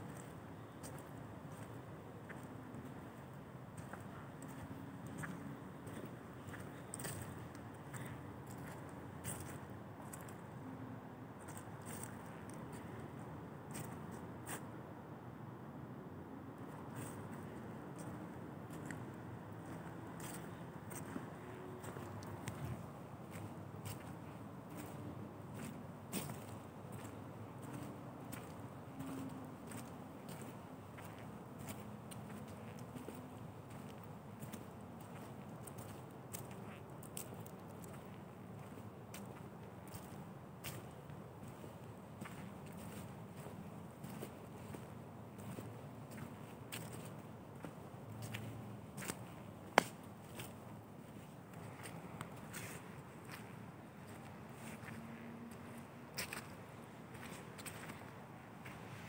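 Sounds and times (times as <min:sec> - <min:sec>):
footsteps on dry leaves: 0:03.8 - 0:10.4, 0:18.0 - 0:59.0.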